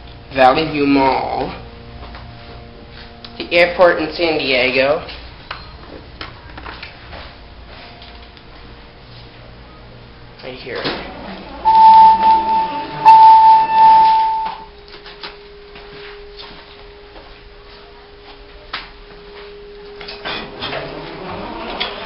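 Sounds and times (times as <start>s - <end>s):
hydraulic elevator hum: 8.7s - 14.7s, 20.4s - 22.0s
high elevator beep: 11.5s - 14.7s.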